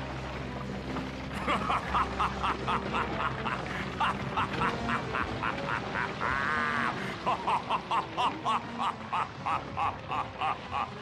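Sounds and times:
cartoon character laughing: 1.4s - 11.0s.

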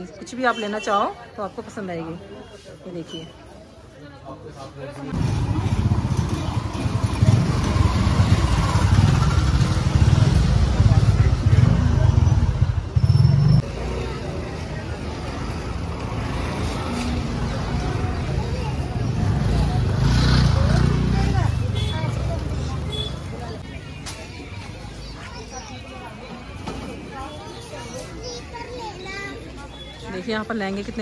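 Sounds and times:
motor vehicle noise: 4.6s - 31.0s.

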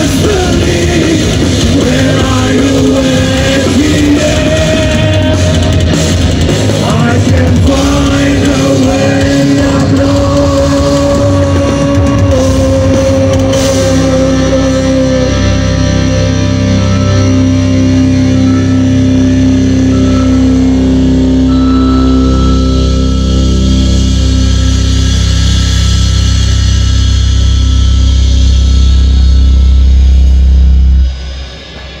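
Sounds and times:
distorted chord: 0.0s - 32.0s
heavy metal band playing live: 0.0s - 32.0s.

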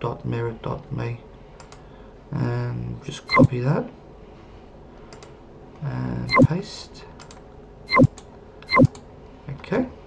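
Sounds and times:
mouse clicks: 7.2s - 9.0s.

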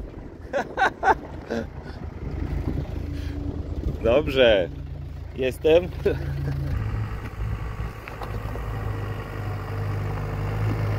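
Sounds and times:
car driving on gravel: 0.0s - 10.9s
car engine rumbling: 0.0s - 10.9s.

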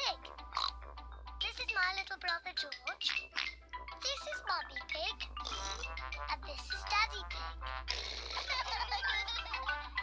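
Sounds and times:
child talking: 0.0s - 0.3s, 1.4s - 3.1s, 4.0s - 7.6s, 8.8s - 9.6s
light children's music: 0.0s - 10.0s
cartoon pig snort: 0.6s - 0.8s, 5.4s - 6.0s, 7.9s - 8.7s.

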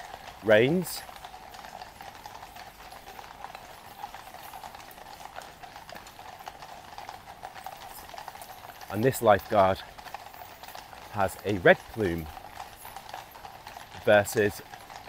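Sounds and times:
horse hooves clip-clopping on road: 0.0s - 15.0s.

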